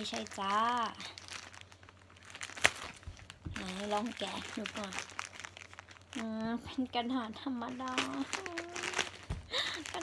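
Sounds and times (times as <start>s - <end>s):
woman speaking: 0.0s - 1.2s, 3.5s - 5.1s, 6.2s - 9.1s
plastic pack crinkling: 0.0s - 10.0s
paper sheet rustling: 7.6s - 10.0s.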